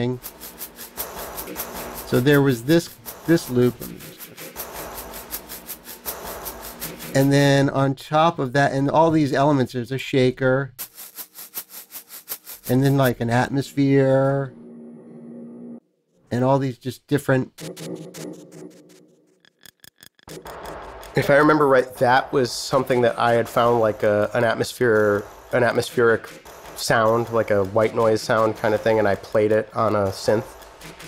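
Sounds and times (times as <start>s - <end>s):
hissy percussion loop: 0.0s - 7.6s, 10.8s - 13.9s, 20.3s - 31.0s.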